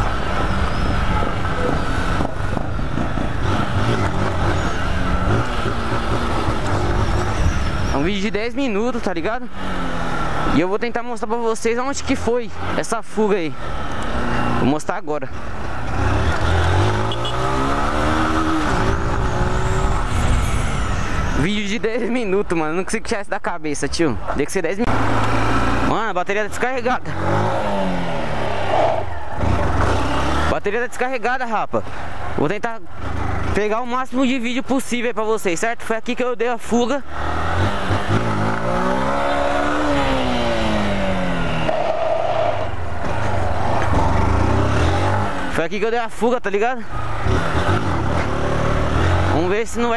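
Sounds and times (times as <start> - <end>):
motorcycle engine revving: 0.0 - 7.9, 9.4 - 10.7, 15.7 - 21.3, 24.8 - 26.1, 27.0 - 30.7, 37.1 - 45.7, 47.0 - 49.6.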